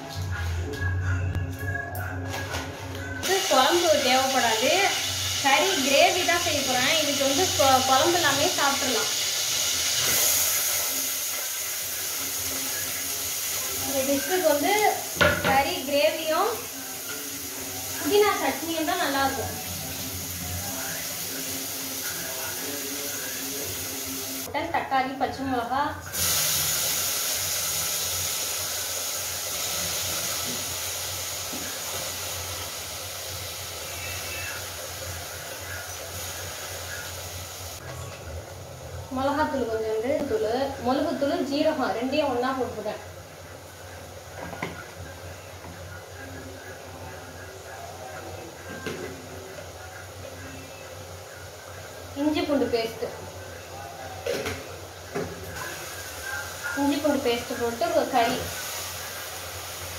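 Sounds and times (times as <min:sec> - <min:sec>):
pot hissing on gas burner: 0:03.2 - 0:24.5, 0:26.0 - 0:37.9, 0:39.1 - 0:59.9.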